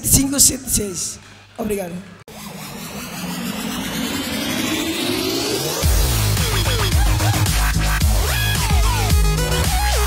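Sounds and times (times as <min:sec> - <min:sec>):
electronic music: 0:01.7 - 0:10.0
rising whoosh: 0:02.3 - 0:08.0
low steady drone: 0:02.3 - 0:08.1.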